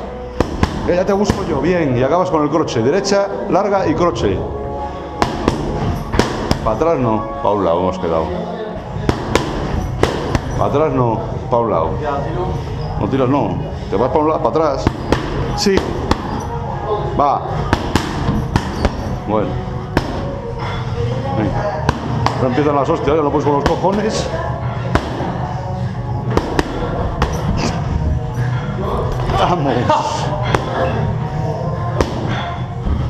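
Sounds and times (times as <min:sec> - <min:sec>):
boxing gloves hitting pads: 0:00.4 - 0:01.6, 0:05.2 - 0:06.8, 0:09.0 - 0:10.6, 0:14.8 - 0:16.5, 0:17.6 - 0:19.1, 0:19.9 - 0:20.4, 0:21.8 - 0:22.6, 0:24.9 - 0:25.4, 0:26.3 - 0:27.8.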